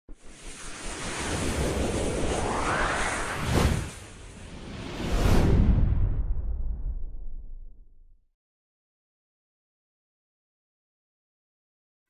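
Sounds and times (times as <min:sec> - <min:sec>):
whoosh sound effect: 0:00.5 - 0:06.0.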